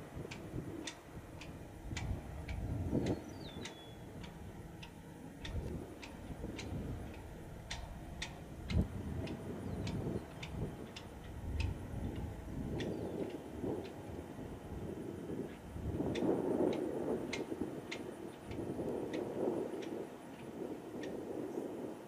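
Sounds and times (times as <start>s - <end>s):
sharp ticking: 0.0s - 15.4s
jet aircraft rumble flying overhead: 0.0s - 22.0s
bird chirp: 3.0s - 4.1s, 9.6s - 10.6s, 12.8s - 13.4s.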